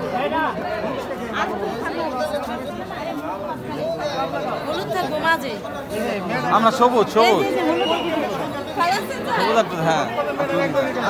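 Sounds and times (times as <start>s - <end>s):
overlapping adult chatter: 0.0s - 11.0s.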